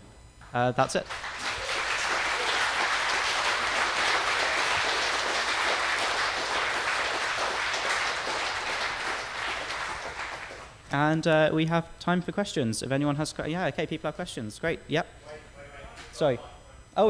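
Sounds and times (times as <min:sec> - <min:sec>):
audience applauding: 0:01.0 - 0:10.8.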